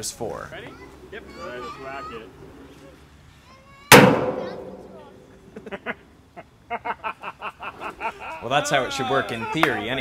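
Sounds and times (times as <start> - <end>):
hammer banging steel drum: 3.9 - 5.1.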